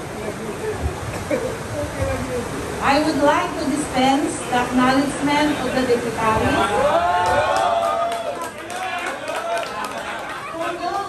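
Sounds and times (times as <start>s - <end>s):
group of people talking: 0.0s - 11.0s.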